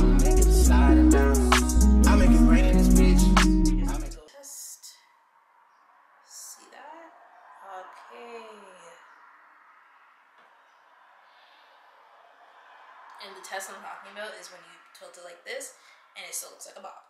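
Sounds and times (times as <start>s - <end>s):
woman's wordless vocal sounds: 6.3s - 9.1s
woman breathing: 11.0s - 13.2s, 15.7s - 16.2s.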